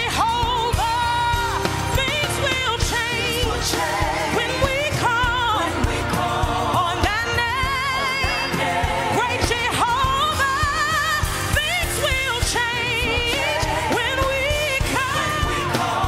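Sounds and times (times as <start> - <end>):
backing singers: 0.0 - 16.0
band music with steady beat: 0.0 - 16.0
lead singer with vibrato: 0.0 - 16.0.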